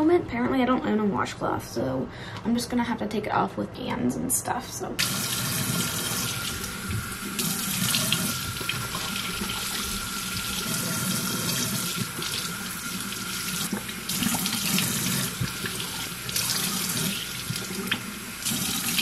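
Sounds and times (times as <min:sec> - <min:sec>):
tap running into sink: 0:05.0 - 0:12.5.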